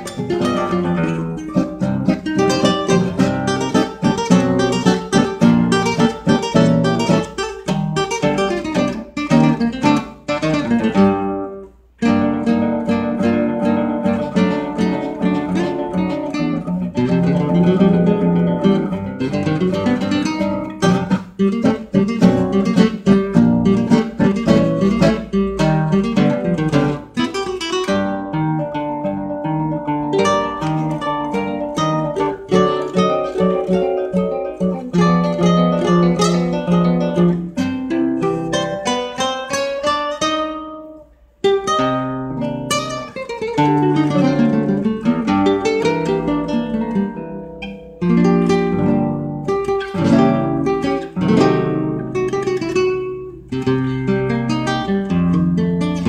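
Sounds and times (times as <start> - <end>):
acoustic guitars playing: 0.0 - 56.0.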